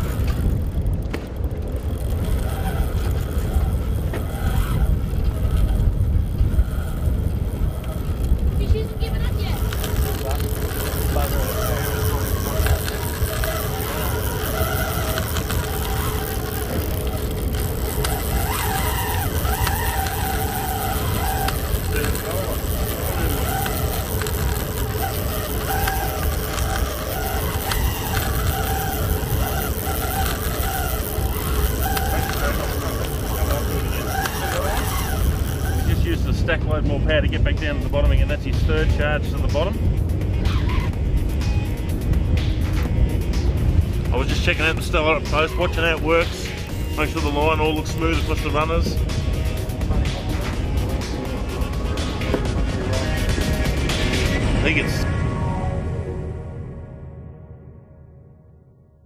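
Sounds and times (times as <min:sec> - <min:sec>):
boat engine running: 0:00.0 - 0:58.0
steady hum: 0:00.0 - 0:58.9
wind rumble: 0:00.0 - 0:59.0
faint voices: 0:07.7 - 0:36.5.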